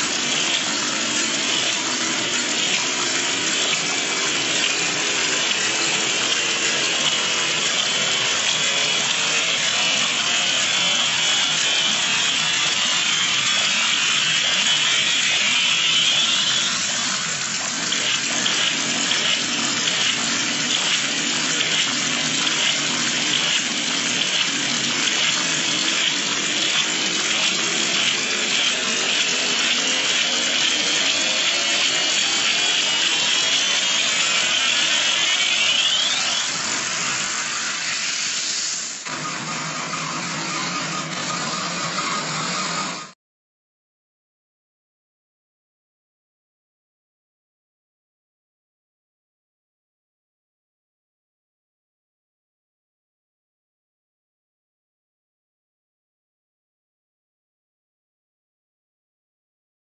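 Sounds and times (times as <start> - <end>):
harsh distorted electronic noise: 0.0 - 43.1.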